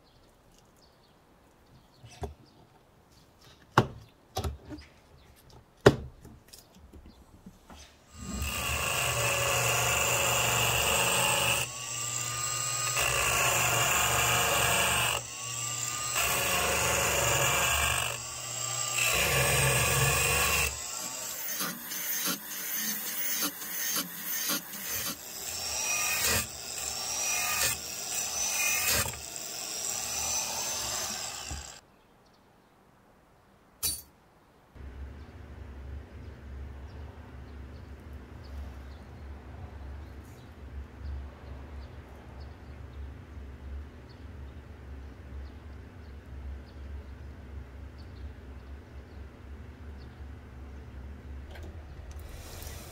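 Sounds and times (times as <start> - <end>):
angle grinder cutting steel: 8.1 - 31.8, 52.2 - 52.9.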